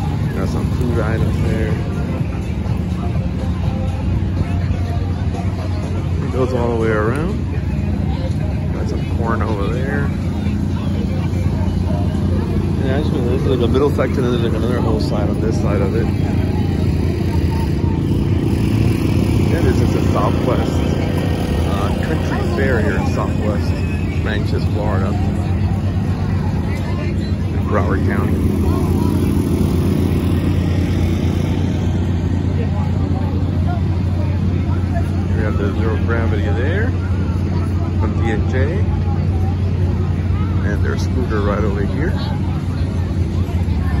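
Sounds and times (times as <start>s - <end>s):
crowd chatter: 0.0s - 44.0s
faint voices: 0.0s - 44.0s
generator engine droning: 0.0s - 44.0s.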